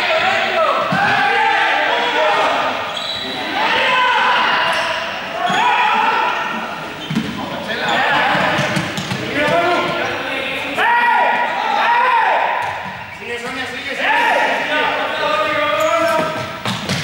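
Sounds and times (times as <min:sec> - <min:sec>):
young people shouting: 0:00.0 - 0:06.8, 0:10.7 - 0:12.6.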